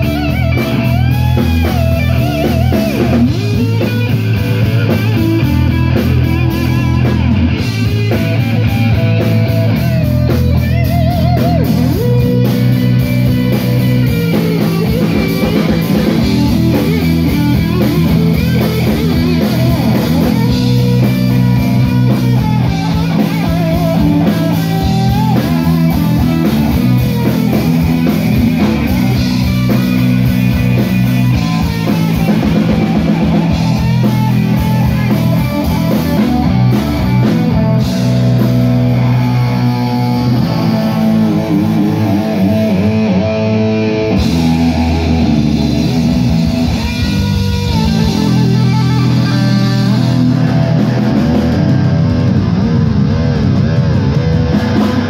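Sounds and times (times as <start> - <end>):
live hard rock band: 0.0 - 55.0.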